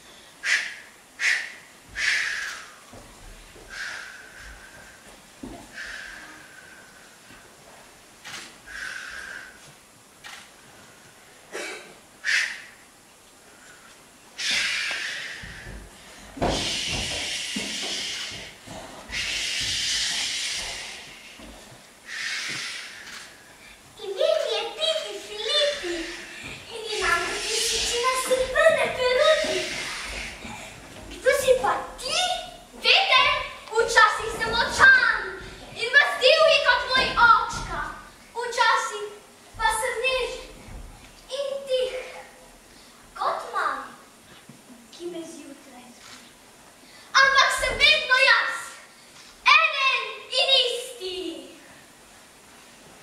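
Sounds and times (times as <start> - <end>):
long hissing whooshes: 0.1 - 11.5, 12.1 - 41.0
child's high voice: 24.0 - 30.3, 31.2 - 40.6, 41.3 - 42.4, 43.2 - 44.0, 47.1 - 48.9, 49.5 - 51.7.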